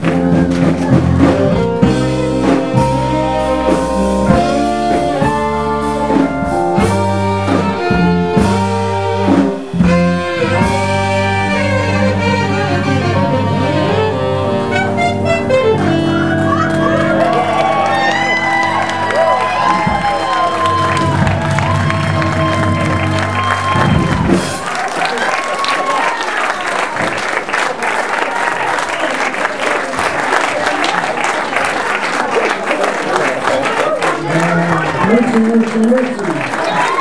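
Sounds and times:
audience applauding and cheering: 0:00.0 - 0:06.2, 0:09.3 - 0:37.0
swing band playing: 0:00.0 - 0:37.0
saxophone lines: 0:01.3 - 0:24.6.

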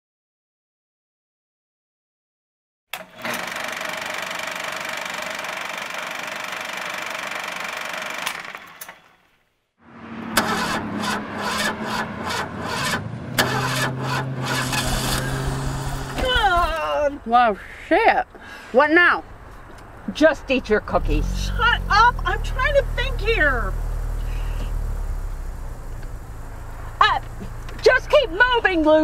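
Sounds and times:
car engine sputtering and knocking: 0:10.3 - 0:17.1, 0:20.8 - 0:29.0.

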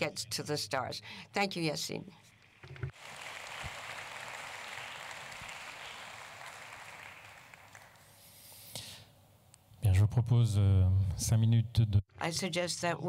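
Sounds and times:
audience applauding: 0:02.9 - 0:08.1.

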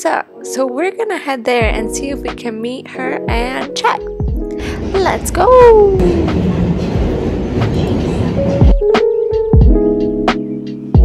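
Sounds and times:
light music with plucked notes: 0:00.0 - 0:11.0
train rumbling and rattling: 0:04.2 - 0:09.5.

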